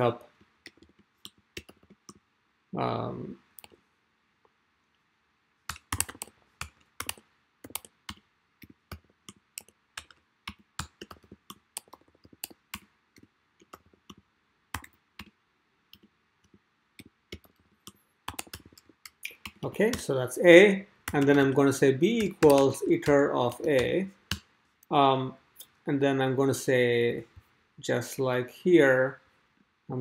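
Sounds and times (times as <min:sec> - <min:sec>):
typing on computer keyboard: 0:00.6 - 0:02.2, 0:05.7 - 0:20.0, 0:21.1 - 0:21.6, 0:22.2 - 0:24.5.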